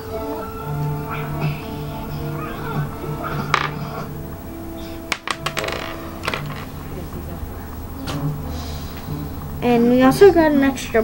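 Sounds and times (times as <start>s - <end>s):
background music: 0.0s - 11.0s
plastic toy bricks clicking: 5.1s - 6.7s.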